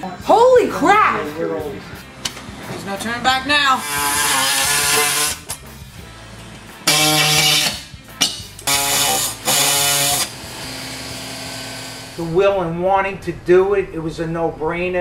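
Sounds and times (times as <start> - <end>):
background music: 0.0 - 15.0
power tool bursts: 3.8 - 5.6, 6.8 - 7.9, 8.6 - 12.2.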